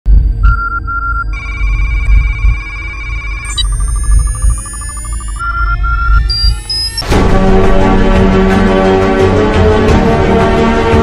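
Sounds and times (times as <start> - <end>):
deep bass drone: 0.1 - 11.0
rapidly pulsing synthetic beep: 0.5 - 7.0
steady high electronic tone: 1.3 - 7.1.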